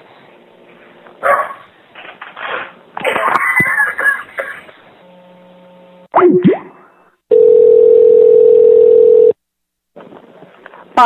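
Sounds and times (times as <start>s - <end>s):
telephone ringing tone: 7.3s - 9.4s.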